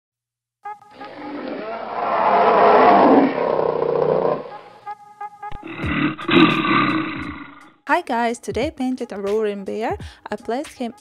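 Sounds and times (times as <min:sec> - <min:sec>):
animal roar: 0:01.0 - 0:04.8, 0:05.5 - 0:07.7.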